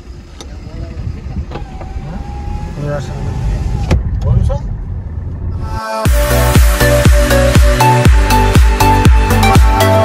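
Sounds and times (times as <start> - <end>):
car engine and road rumble: 0.0 - 10.0.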